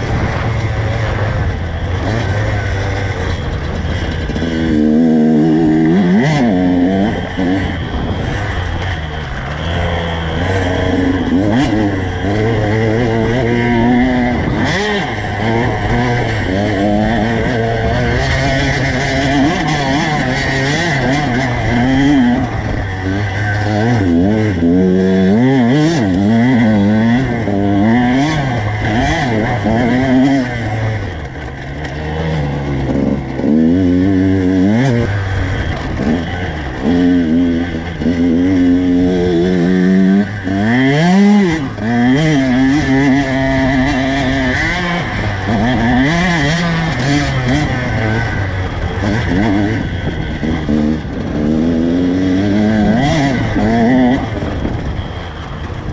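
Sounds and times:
dirt bike engine revving: 0.0s - 55.9s.

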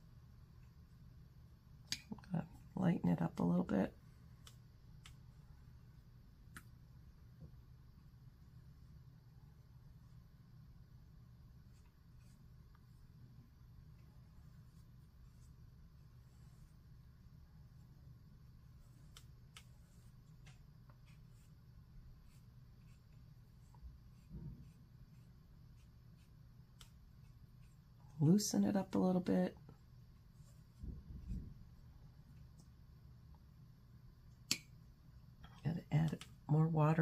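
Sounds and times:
low room hum: 0.0s - 37.0s
paintbrush scratching on paper: 11.6s - 13.1s, 14.2s - 17.0s, 18.6s - 28.0s.

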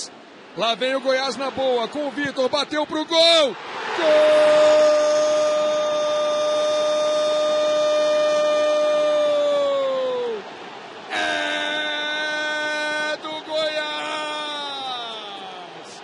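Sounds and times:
stadium crowd noise: 0.0s - 16.0s.

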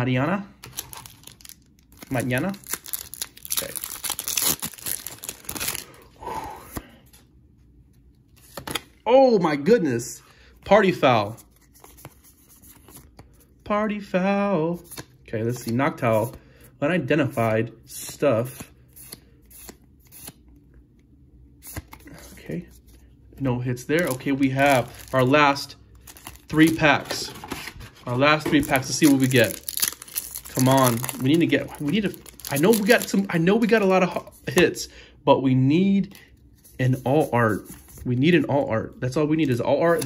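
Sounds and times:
foil wrapper tearing and crinkling: 0.6s - 5.9s, 28.6s - 33.3s.

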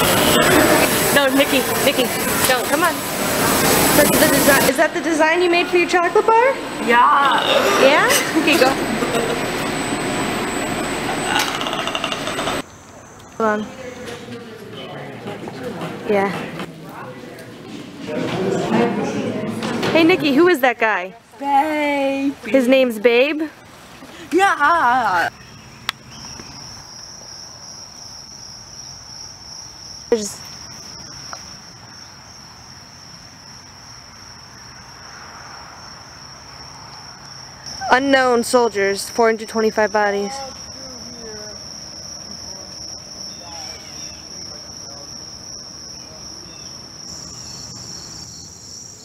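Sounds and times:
machinery din with high whine: 0.0s - 13.6s
crickets chirping: 0.0s - 15.2s, 20.0s - 49.0s
quiet outdoor ambience: 0.0s - 49.0s.

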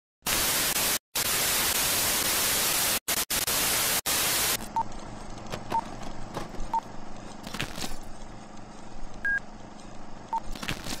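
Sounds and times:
television static hiss: 0.3s - 4.9s.

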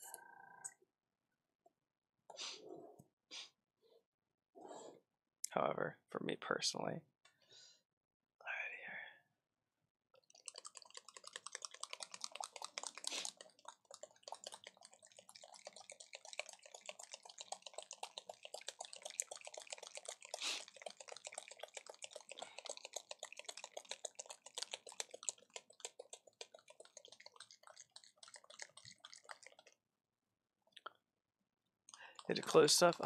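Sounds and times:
rapid irregular clicking: 10.2s - 29.8s, 31.9s - 33.0s.

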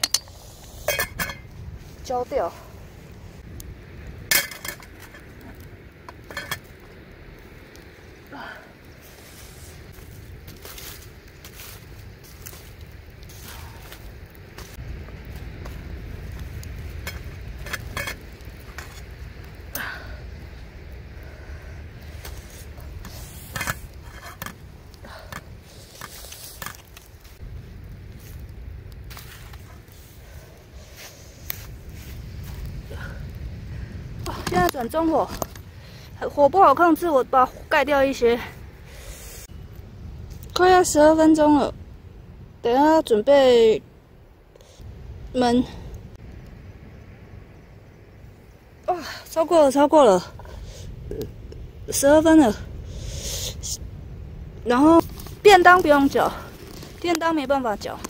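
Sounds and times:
metal pot clinking: 0.0s - 1.5s, 4.3s - 5.3s.

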